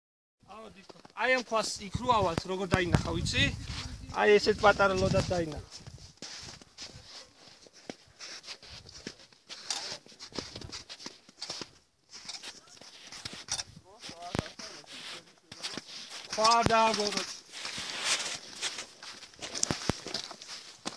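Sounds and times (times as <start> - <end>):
footsteps on snow and scree: 0.6 - 20.9
hissy scuffing background: 3.0 - 20.9.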